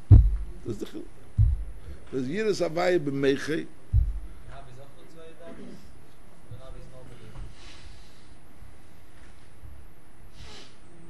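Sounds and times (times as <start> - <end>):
dull deep thumps: 0.0 - 0.6, 1.4 - 2.0, 3.9 - 4.4.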